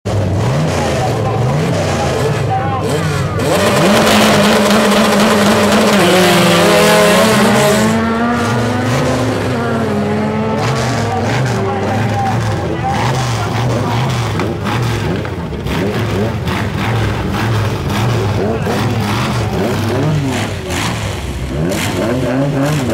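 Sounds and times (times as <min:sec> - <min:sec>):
race car engines revving: 0:00.0 - 0:22.9.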